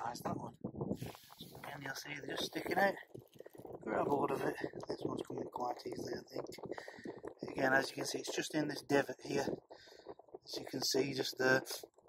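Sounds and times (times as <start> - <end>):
man talking: 0.0 - 0.6, 1.4 - 3.1, 3.8 - 9.6, 10.5 - 11.8.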